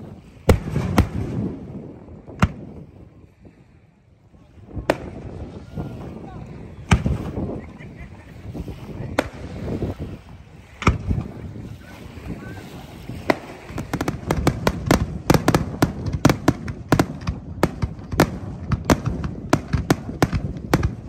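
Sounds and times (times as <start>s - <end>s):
fireworks bangs: 0.4s - 2.8s, 4.8s - 6.2s, 6.8s - 7.6s, 8.7s - 11.4s, 12.3s - 21.0s.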